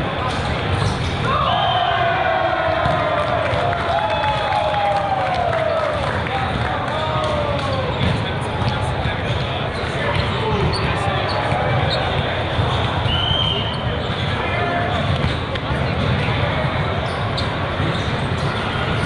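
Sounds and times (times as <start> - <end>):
many voices in a hall: 0.0 - 19.0
volleyballs being hit and bouncing: 2.6 - 4.7, 6.2 - 19.0.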